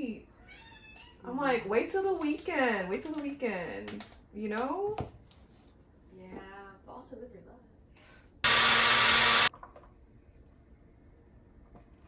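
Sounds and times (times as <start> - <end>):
blender motor running: 8.4 - 9.5.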